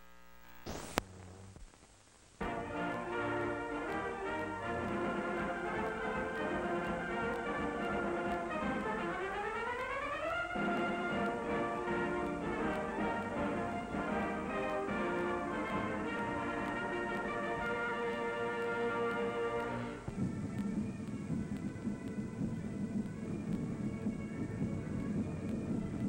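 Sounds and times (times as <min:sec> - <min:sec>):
orchestral brass title music: 0:02.4 - 0:20.1.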